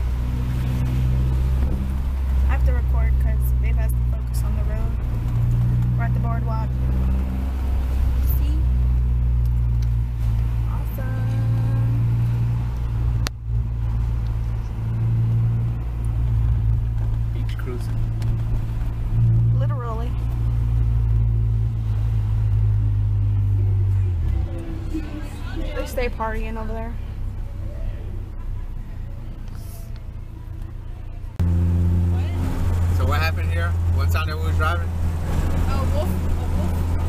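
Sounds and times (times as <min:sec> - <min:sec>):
car engine droning: 0:00.0 - 0:37.0
faint voices: 0:23.6 - 0:31.4.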